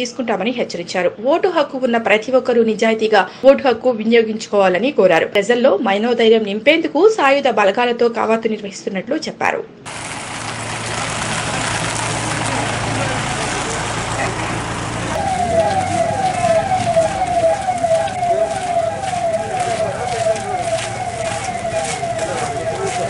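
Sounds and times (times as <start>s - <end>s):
vehicle engine and road noise: 9.9s - 23.0s
police siren wailing: 10.0s - 23.0s.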